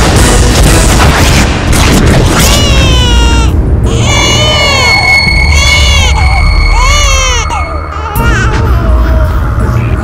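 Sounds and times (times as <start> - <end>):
infant crying: 2.4 - 9.6
film score with high note and drone: 3.0 - 10.0.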